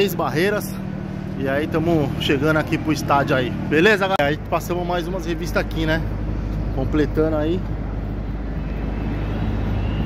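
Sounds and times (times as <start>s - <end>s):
street traffic engine hum: 0.0s - 10.0s.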